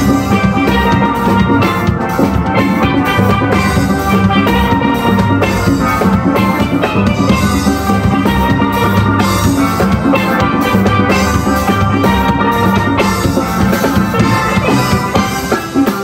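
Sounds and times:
steel band playing: 0.0s - 16.0s.

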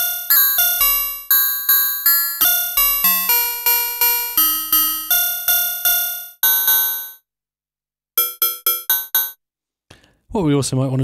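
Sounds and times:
metallic bell-like synthesizer notes: 2.3s - 7.1s.

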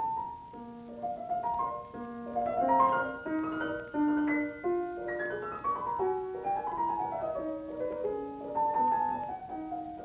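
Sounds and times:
classical piano chords: 0.0s - 10.0s.

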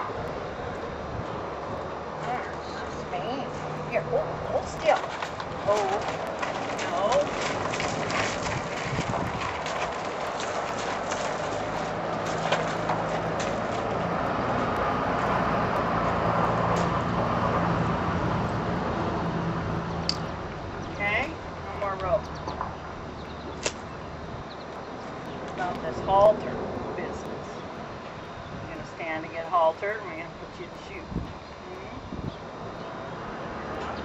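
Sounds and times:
horse hooves on gravel: 1.9s - 18.9s.

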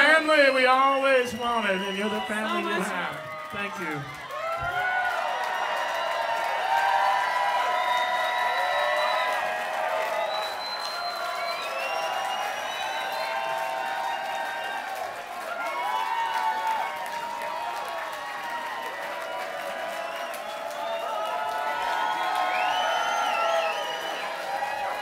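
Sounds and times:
crowd cheering and whooping: 0.0s - 25.0s
crowd clapping: 0.0s - 25.0s.

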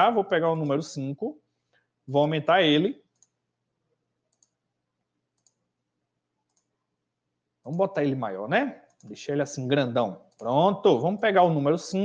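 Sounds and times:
faint computer mouse clicks: 3.1s - 3.4s, 4.3s - 4.6s, 5.4s - 5.6s, 6.5s - 6.7s.

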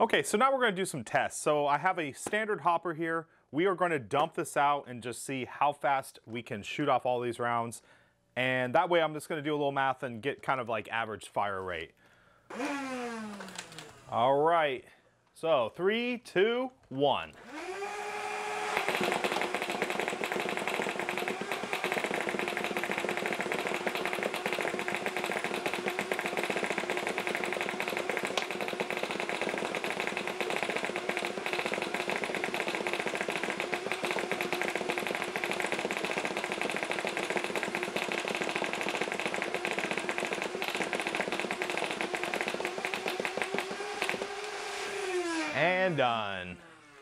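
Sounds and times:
foam balls firing and striking: 18.8s - 44.3s.

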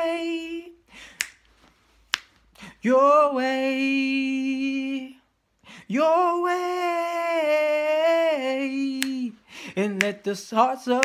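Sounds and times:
man singing a cappella: 0.0s - 1.0s, 2.6s - 11.0s
finger snaps: 1.0s - 2.7s, 8.9s - 10.3s.

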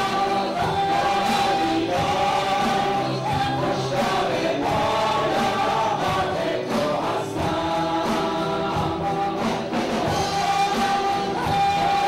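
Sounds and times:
drum kit beat: 0.0s - 12.0s
guitars: 0.0s - 12.0s
voices singing together: 0.0s - 12.0s.

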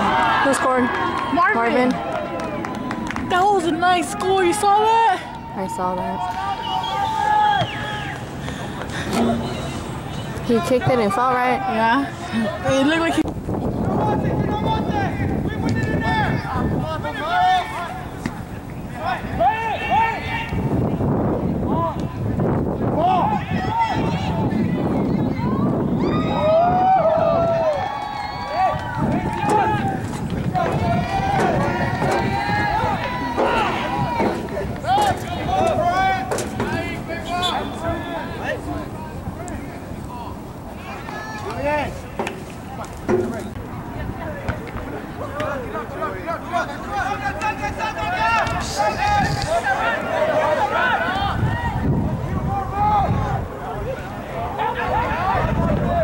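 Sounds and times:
voices shouting and calling out: 0.0s - 56.0s
wind rumble on microphone: 12.6s - 41.0s, 47.6s - 49.7s, 51.1s - 56.0s.

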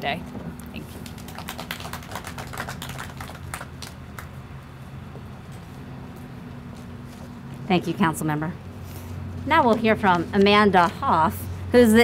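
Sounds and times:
low steady hum: 0.0s - 12.0s
small crowd clapping: 0.9s - 4.4s.

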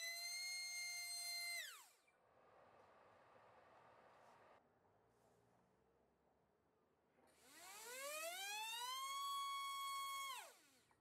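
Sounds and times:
electric motor and propeller whine: 7.5s - 9.2s.

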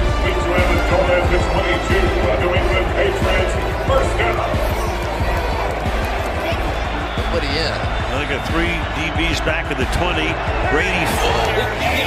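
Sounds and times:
music: 0.0s - 12.0s
stadium crowd voices: 0.0s - 12.0s.

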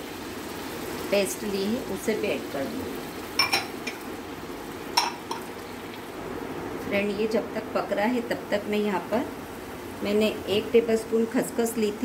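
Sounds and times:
paste frying in a pan: 0.0s - 6.4s.

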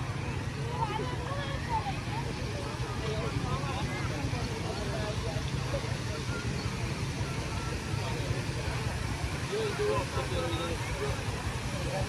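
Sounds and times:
distant people talking: 0.0s - 12.0s.

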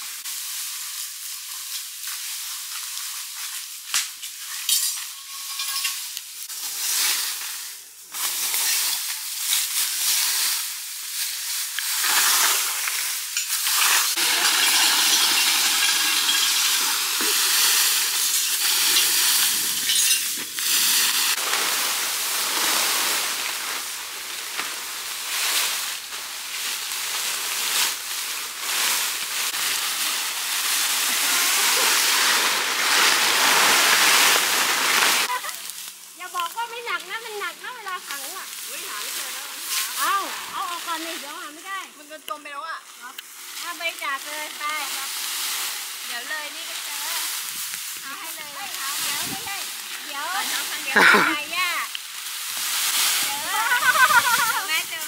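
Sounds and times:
raking dry leaves: 0.0s - 55.0s.

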